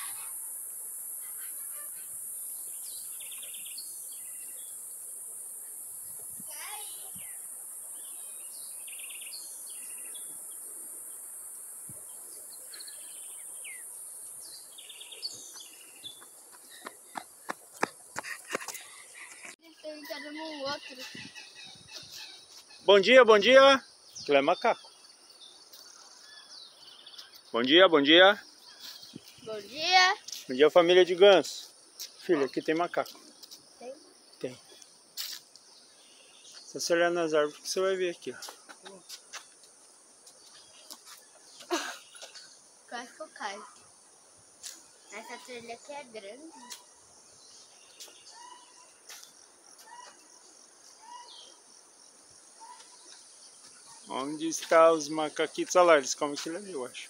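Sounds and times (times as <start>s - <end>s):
high-pitched insect drone: 0.0s - 16.0s
high insect buzz: 0.0s - 57.0s.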